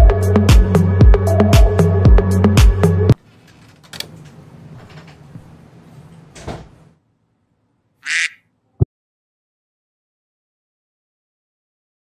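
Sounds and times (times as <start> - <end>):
background music: 0.0 - 3.2
duck quack: 8.0 - 8.4.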